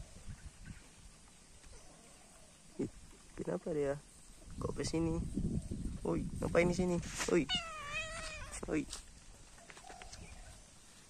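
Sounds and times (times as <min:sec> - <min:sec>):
kitten meowing: 0:07.4 - 0:08.6.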